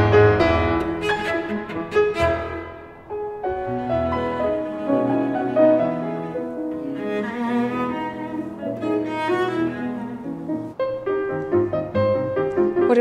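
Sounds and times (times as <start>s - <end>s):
bowed cello notes: 0.0s - 13.0s
piano: 0.0s - 13.0s.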